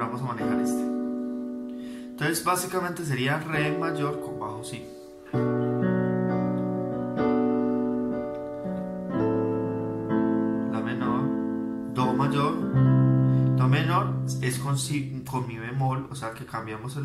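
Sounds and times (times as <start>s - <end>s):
piano chords on electronic keyboard: 0.0s - 17.0s.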